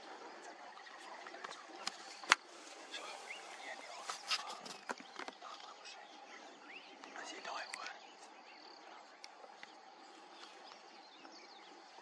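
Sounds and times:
insects droning: 0.0 - 12.0
people whispering: 0.0 - 12.0
bird chirps: 0.3 - 12.0.

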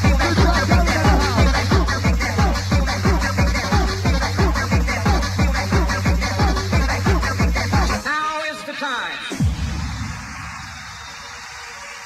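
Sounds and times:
vocal phrases: 0.0 - 9.4.

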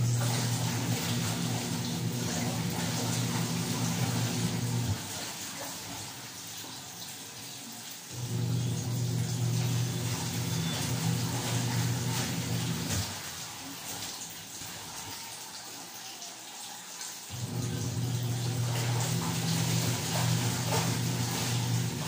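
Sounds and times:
water sloshing in a basin: 0.0 - 22.0.

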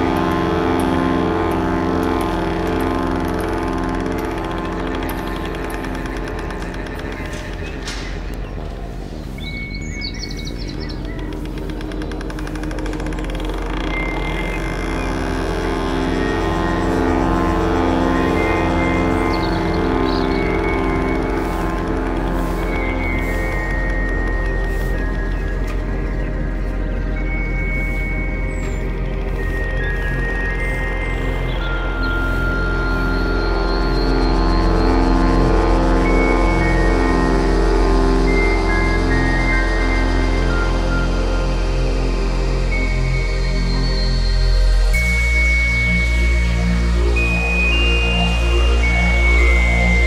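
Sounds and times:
electronic music with synth pads: 0.0 - 50.0.

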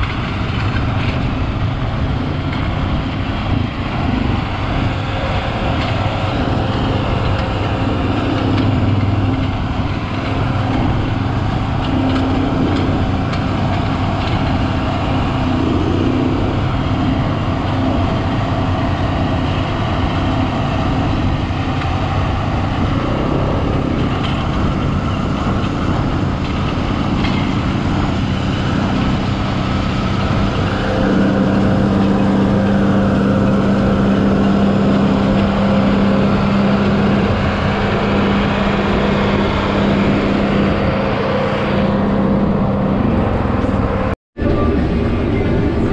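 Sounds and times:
tractor diesel engine running: 0.0 - 45.9.

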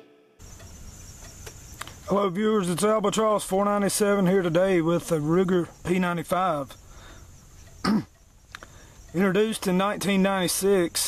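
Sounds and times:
outdoor background noise with hum: 0.4 - 11.0
soft tick: 7.6 - 9.5.

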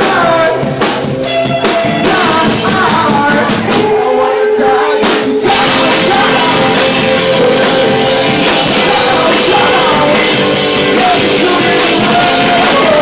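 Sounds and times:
person singing: 0.0 - 13.0
rock band playing live: 0.0 - 13.0.

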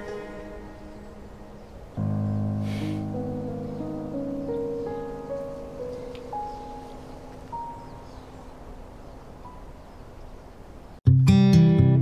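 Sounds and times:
soft held notes: 0.0 - 8.6.

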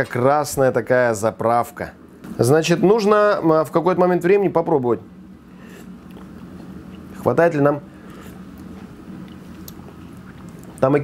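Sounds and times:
low kitchen hum: 0.0 - 11.0
mouth smacks and clicks: 8.1 - 10.8.

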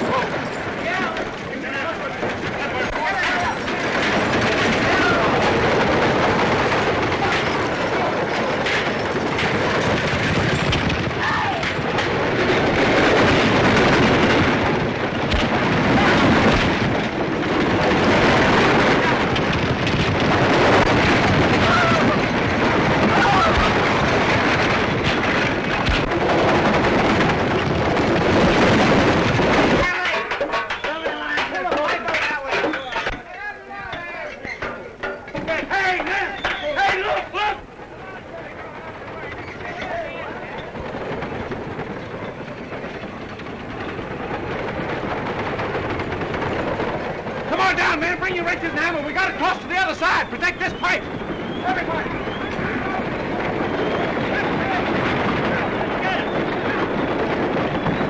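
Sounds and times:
galloping horses: 0.0 - 58.0
horse-drawn wagons rushing: 0.0 - 58.0
people shouting: 11.2 - 11.8, 21.5 - 22.2, 23.0 - 23.8.

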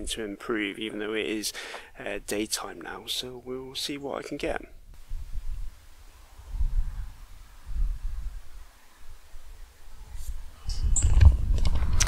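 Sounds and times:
low rumbling on microphone: 4.9 - 12.0.

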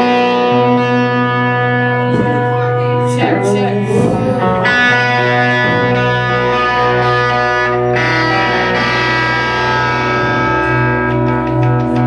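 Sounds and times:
rock band with distorted guitars: 0.0 - 12.0.

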